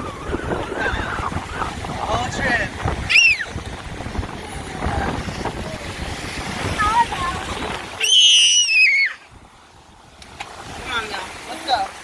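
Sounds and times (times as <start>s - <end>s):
wind buffeting microphone: 0.0s - 8.4s, 9.2s - 11.5s
breaking surf: 0.0s - 12.0s.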